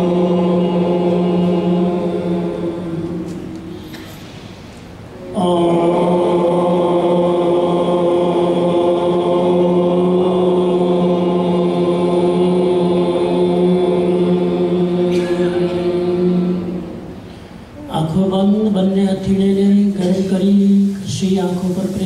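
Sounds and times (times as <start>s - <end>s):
person chanting a mantra: 0.0s - 3.6s, 5.2s - 17.1s.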